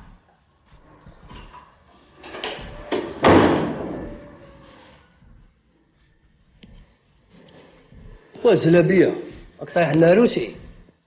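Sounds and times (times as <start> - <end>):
heavy door slam: 2.5 - 4.4.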